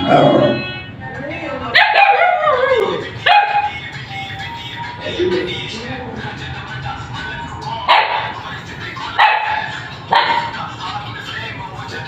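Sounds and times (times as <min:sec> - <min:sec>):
puppy barking: 0:01.8 - 0:03.8, 0:07.9 - 0:08.4, 0:09.2 - 0:10.6.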